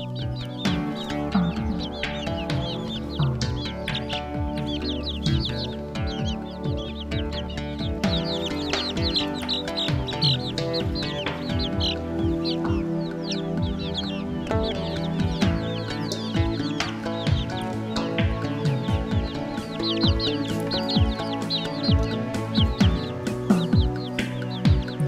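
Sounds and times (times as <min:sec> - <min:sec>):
background music: 0:00.0 - 0:25.0
chicks peeping: 0:00.0 - 0:25.0.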